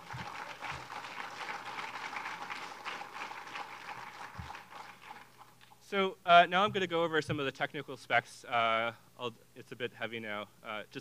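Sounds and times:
audience applauding: 0.0 - 5.7.

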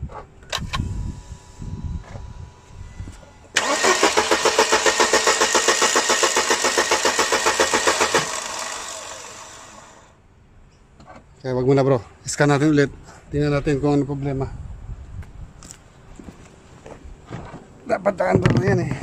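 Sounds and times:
starter cranking engine: 3.6 - 10.1.

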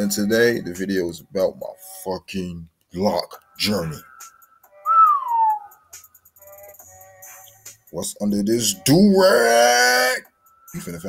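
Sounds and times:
man whistling descending note: 4.7 - 6.0.

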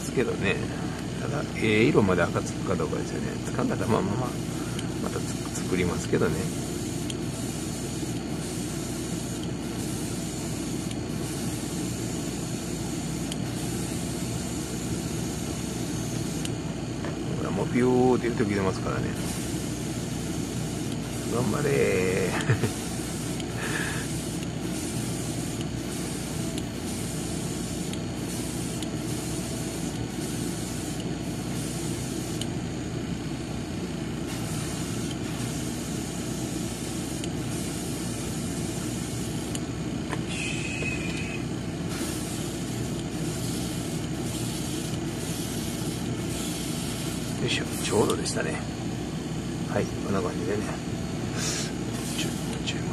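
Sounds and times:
airbrush hissing: 0.0 - 16.6, 17.5 - 32.5, 34.2 - 48.6, 51.3 - 52.8
steady machine hum: 0.0 - 52.9.

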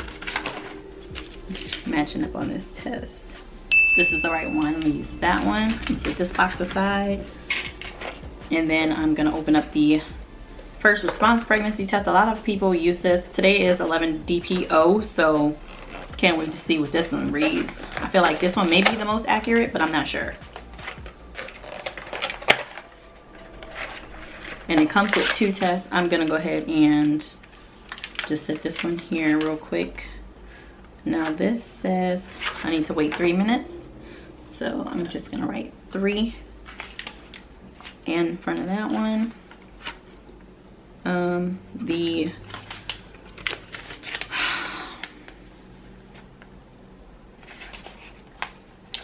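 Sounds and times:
cardboard and wrapper rustling: 0.0 - 29.5, 36.6 - 40.2, 42.3 - 46.4, 47.3 - 49.0.

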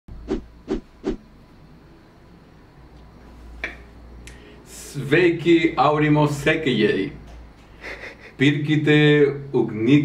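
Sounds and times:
low steady hum: 0.1 - 10.0.

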